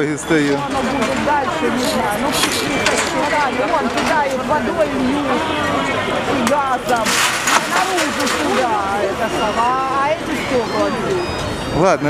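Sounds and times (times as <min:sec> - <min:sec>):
crowd talking and calling out: 0:00.0 - 0:12.0.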